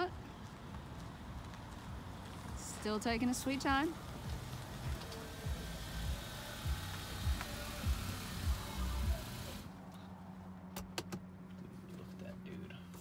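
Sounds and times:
car rolling on wet pavement: 0:00.3 - 0:09.7
rain hiss: 0:01.9 - 0:09.7.

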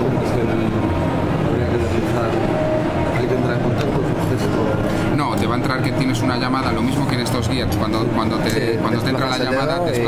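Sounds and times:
busy hall rumble: 0:00.0 - 0:10.0.

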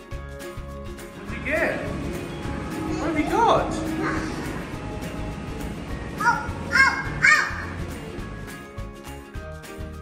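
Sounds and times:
arcade game music: 0:01.0 - 0:08.8.

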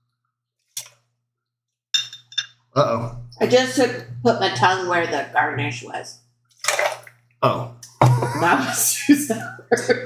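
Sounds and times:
glass clink with ringing tone: 0:02.0 - 0:02.6.

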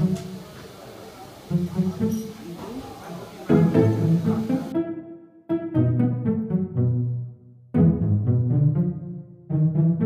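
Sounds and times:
low background hubbub: 0:00.0 - 0:04.9
instrumental music with plucked strings: 0:03.4 - 0:10.0.

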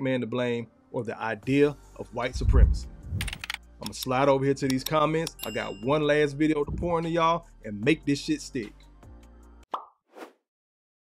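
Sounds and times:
pop with falling tone: 0:09.7 - 0:10.0.

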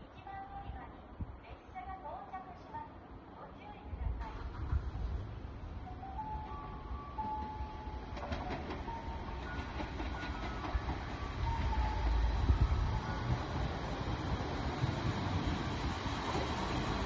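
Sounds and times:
diesel railcar engine rumble: 0:02.8 - 0:17.0.

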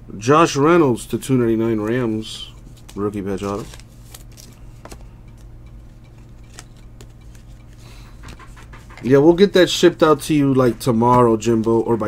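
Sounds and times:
steady low hum: 0:00.0 - 0:12.0
trading cards being handled: 0:01.6 - 0:12.0.

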